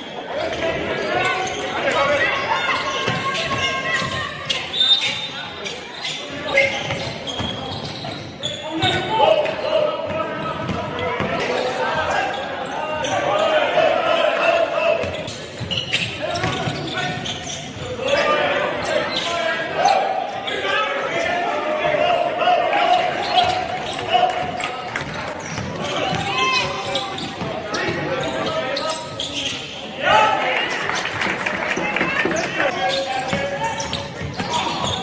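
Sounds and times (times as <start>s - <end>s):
sneaker squeaks: 0.0s - 13.6s, 15.0s - 21.4s, 23.0s - 30.0s, 31.9s - 35.0s
basketball bouncing on court: 10.0s - 11.4s, 24.4s - 28.1s.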